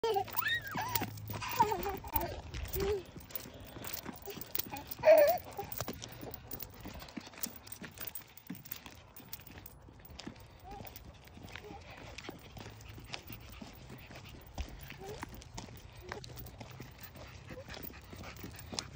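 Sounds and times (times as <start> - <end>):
rubber boots footsteps on asphalt: 0.2 - 18.9.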